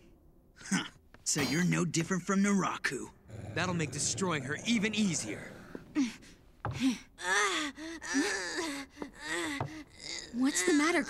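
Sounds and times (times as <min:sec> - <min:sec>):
boy groaning and gasping: 0:05.0 - 0:11.0.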